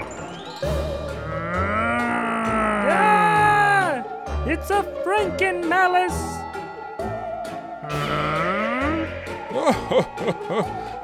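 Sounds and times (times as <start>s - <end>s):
moaning groan: 1.1s - 4.0s, 7.8s - 10.0s.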